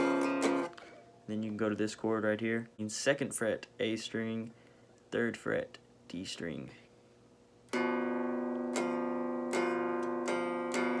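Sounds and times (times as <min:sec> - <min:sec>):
guitar chord strummed slowly: 0:00.0 - 0:00.9, 0:07.7 - 0:11.0.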